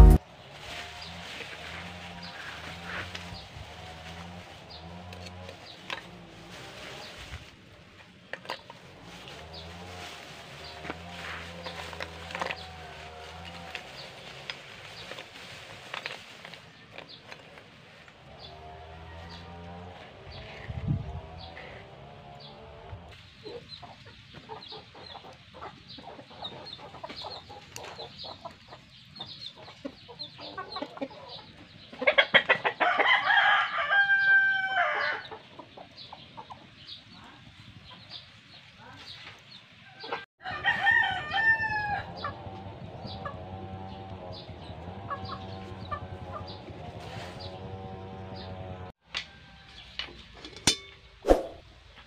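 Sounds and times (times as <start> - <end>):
rooster crowing: 18.6 - 20.0, 32.8 - 35.2, 40.1 - 42.4.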